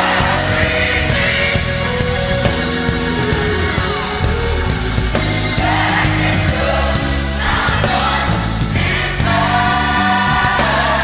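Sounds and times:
gospel music: 0.0 - 11.0.

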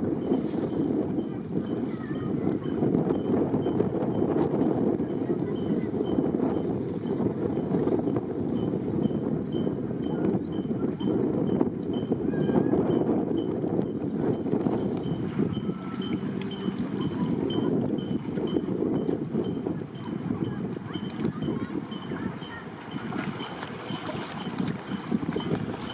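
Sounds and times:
wind buffeting microphone: 0.0 - 25.9.

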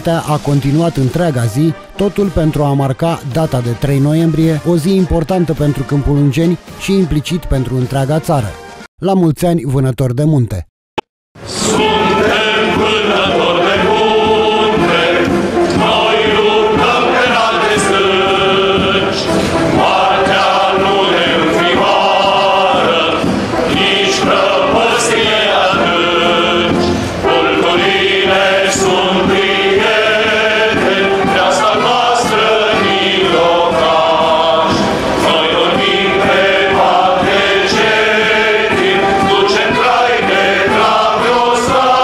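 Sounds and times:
male choir singing: 11.4 - 42.0.

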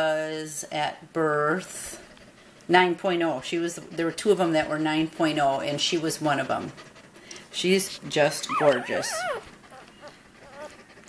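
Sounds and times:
faint puppy squeaks: 8.3 - 11.0
puppy squealing: 8.4 - 10.9.

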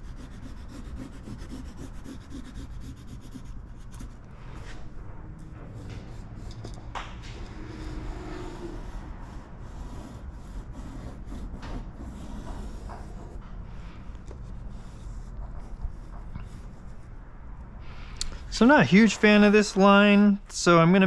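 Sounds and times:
pencil scratching on tape: 0.0 - 4.3, 5.7 - 6.8, 7.6 - 13.4, 14.3 - 17.2.

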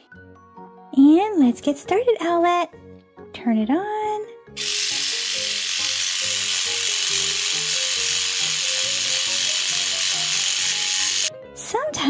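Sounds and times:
electric toothbrush buzzing: 4.6 - 11.3.

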